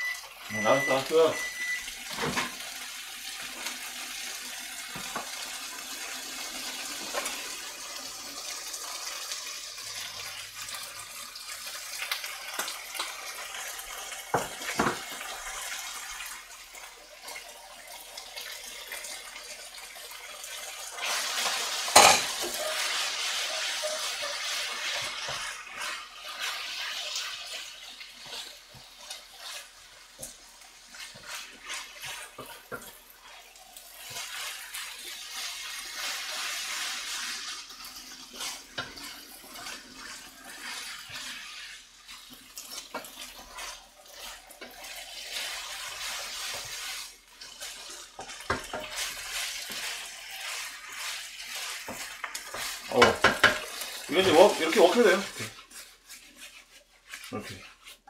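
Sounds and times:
noodles sizzling in frying pan: 0.0s - 58.0s
utensils scraping pan: 21.0s - 27.2s, 30.9s - 33.0s, 42.6s - 58.0s.

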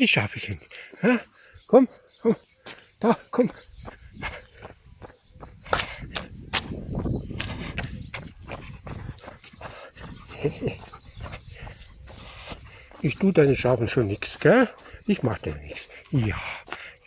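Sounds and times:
footsteps on asphalt: 2.6s - 17.0s.

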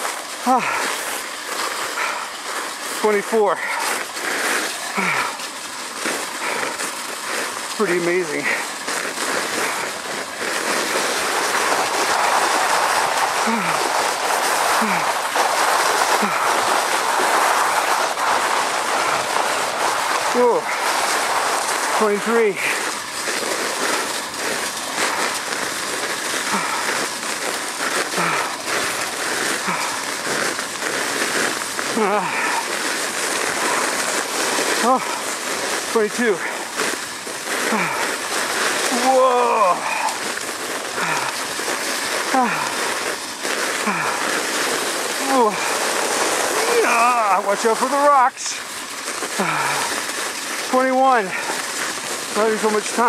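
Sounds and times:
sled runners scraping over snow: 0.0s - 53.0s.

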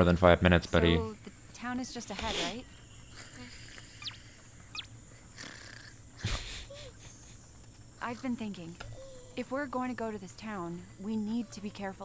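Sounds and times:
cartoon mouse squeaking: 3.9s - 6.0s.

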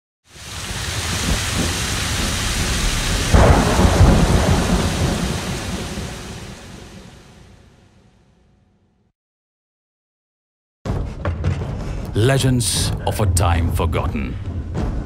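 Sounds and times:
rain falling: 0.3s - 7.6s
thunder rumbling: 0.3s - 7.6s.

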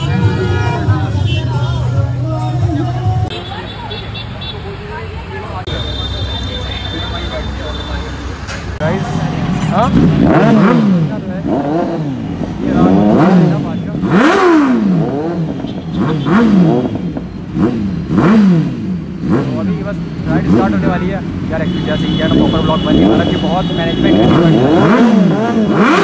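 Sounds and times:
motorcycle engines revving: 0.0s - 26.0s.

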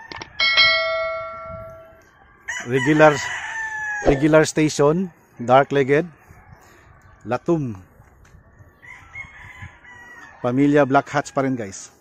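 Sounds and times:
bell ding: 0.4s - 2.0s.

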